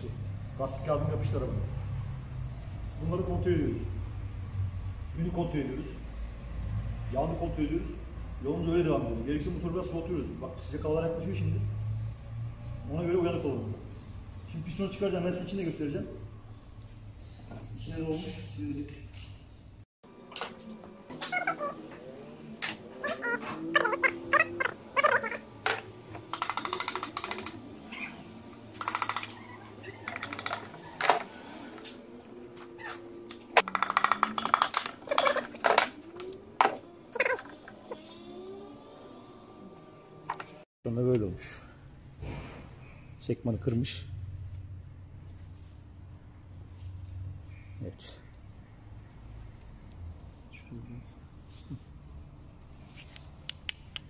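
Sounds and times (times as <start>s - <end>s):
rattling of hand tools: 22.6s - 32.0s, 32.6s - 37.8s
handling noise of metal part: 32.9s - 37.5s
metal clicks and knocks: 33.6s - 36.8s.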